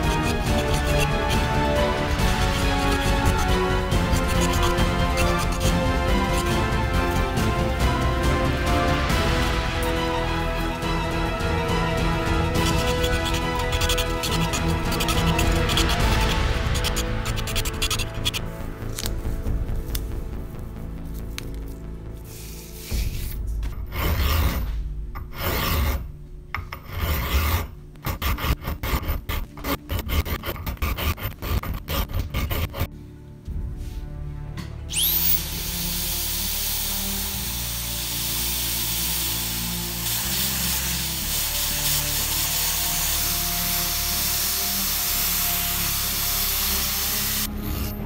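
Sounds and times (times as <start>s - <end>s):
hand file rasping on pipe: 0.0s - 7.2s, 12.4s - 18.5s, 26.8s - 32.9s
power file whining: 34.9s - 47.9s.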